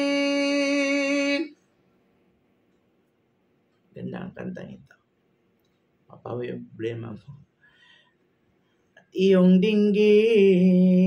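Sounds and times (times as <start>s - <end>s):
man singing a hymn unaccompanied: 0.0s - 1.6s, 9.2s - 11.0s.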